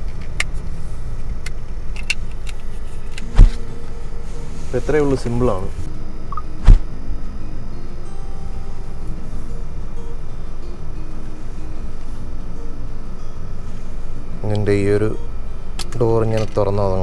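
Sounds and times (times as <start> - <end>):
steady low hum: 0.0 - 17.0
faint background music: 2.8 - 17.0.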